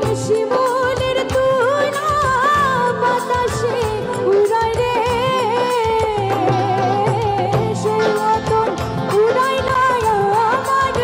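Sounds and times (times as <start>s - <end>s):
band with drums: 0.0s - 11.0s
woman singing into microphone: 0.0s - 11.0s.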